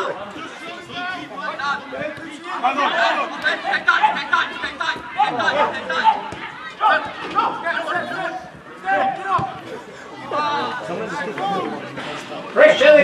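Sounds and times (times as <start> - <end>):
voices talking and calling out: 0.0 - 13.0.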